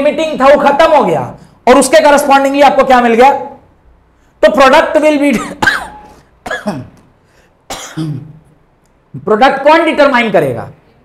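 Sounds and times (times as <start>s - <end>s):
man clearing throat: 5.3s - 7.0s, 7.7s - 8.5s
man coughing: 5.3s - 7.0s, 7.7s - 8.4s.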